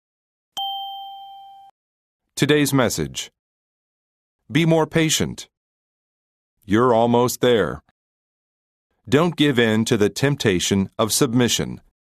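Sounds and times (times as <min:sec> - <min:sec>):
bell-like ding chime: 0:00.6 - 0:01.7.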